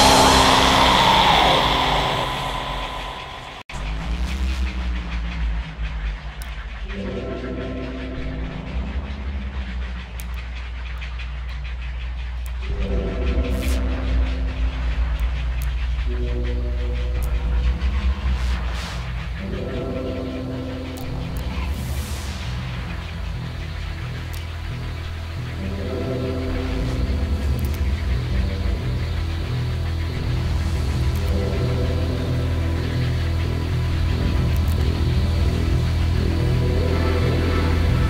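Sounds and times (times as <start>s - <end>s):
hiss: 0.0s - 3.6s
held synth tones: 0.0s - 3.7s
deep steady rumble: 0.0s - 38.0s
distorted black metal music: 0.0s - 38.0s.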